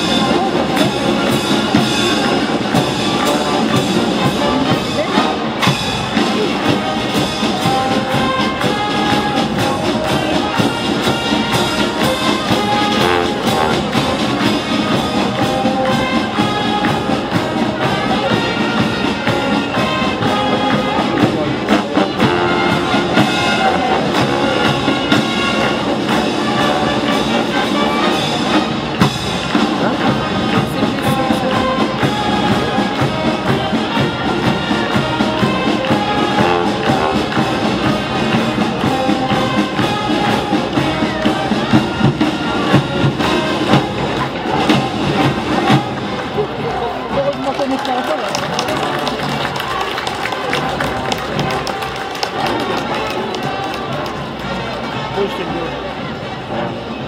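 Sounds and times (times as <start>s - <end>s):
brass band playing: 0.0s - 57.0s
crowd chatter: 0.0s - 57.0s.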